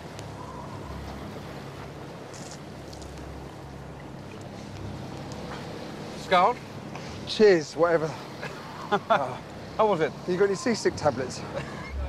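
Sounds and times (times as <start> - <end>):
boat engine humming: 0.0 - 12.0
sea noise: 0.0 - 12.0
wind: 0.0 - 12.0.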